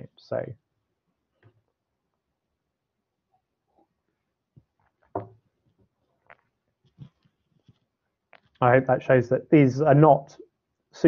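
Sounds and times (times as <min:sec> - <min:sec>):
knock-like sounds: 0:05.0 - 0:05.4.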